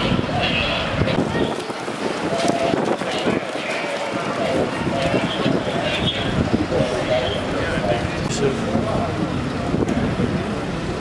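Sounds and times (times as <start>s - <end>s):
outdoor street noise: 0.0s - 11.0s
people talking: 0.0s - 11.0s.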